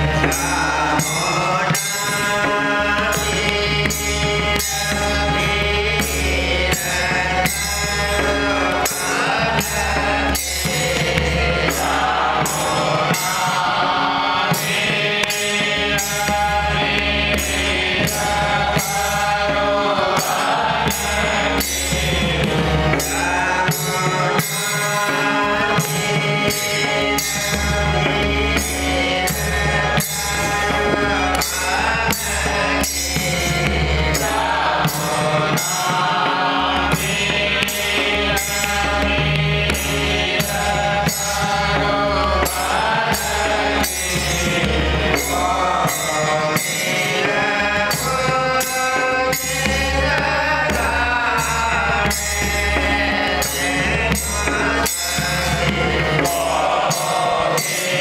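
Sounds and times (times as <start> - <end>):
men singing devotional song: 0.0 - 58.0
ringing hand cymbals: 0.0 - 58.0
men chanting together: 47.3 - 58.0.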